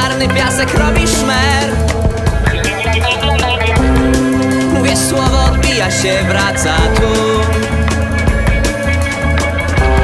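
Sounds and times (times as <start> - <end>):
bass guitar: 0.0 - 10.0
drum kit playing steady beat: 0.0 - 10.0
guitar: 0.0 - 10.0.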